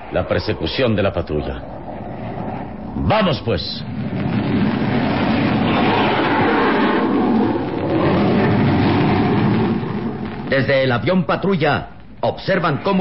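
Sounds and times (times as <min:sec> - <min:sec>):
plane engines running loud: 0:03.8 - 0:09.8.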